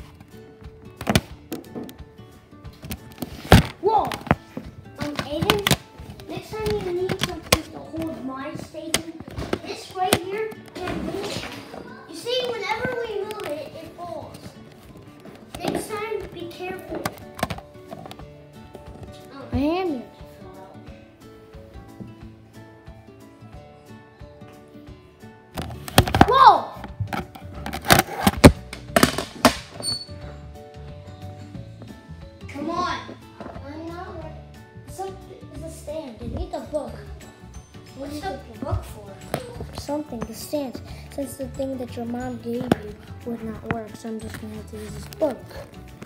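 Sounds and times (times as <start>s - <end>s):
hard objects tapping together: 0.0s - 19.7s, 25.6s - 29.9s, 37.2s - 46.0s
background music: 0.0s - 46.0s.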